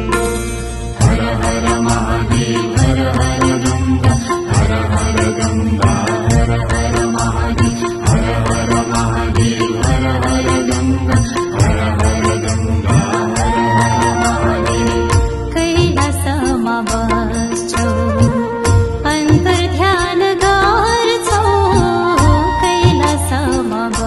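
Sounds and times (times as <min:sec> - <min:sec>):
percussion beat: 0:00.0 - 0:24.0
voices singing devotional song: 0:01.0 - 0:24.0.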